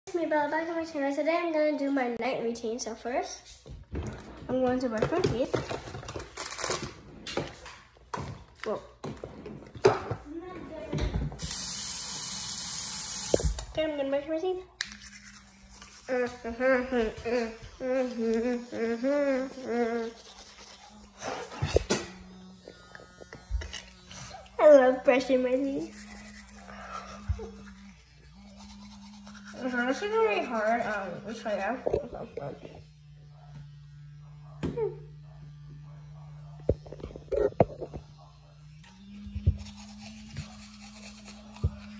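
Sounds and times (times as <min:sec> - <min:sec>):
electric toothbrush buzz: 0:00.1 - 0:41.9
bristles scrubbing teeth: 0:14.7 - 0:33.4, 0:38.8 - 0:41.9.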